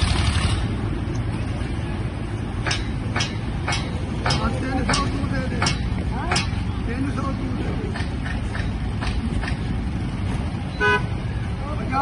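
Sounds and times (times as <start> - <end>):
street traffic rumble: 0.0 - 12.0
vehicle horn toot: 10.7 - 11.2.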